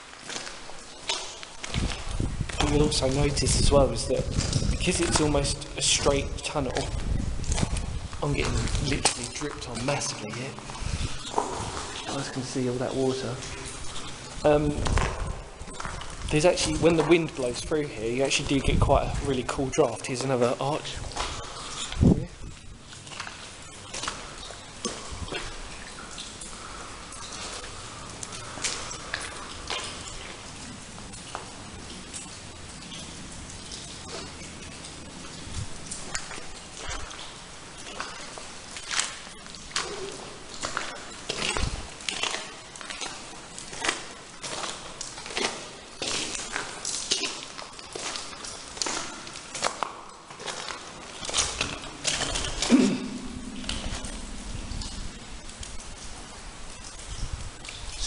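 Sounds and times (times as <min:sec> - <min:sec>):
footsteps on wet muddy floor: 0:00.0 - 0:58.0.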